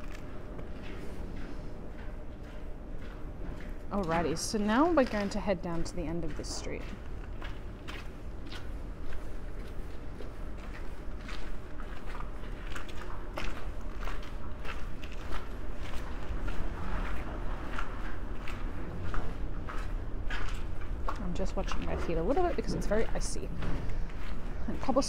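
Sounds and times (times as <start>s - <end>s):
footsteps crunching on cobblestones: 0.0s - 25.0s
low steady rumble: 0.0s - 25.0s.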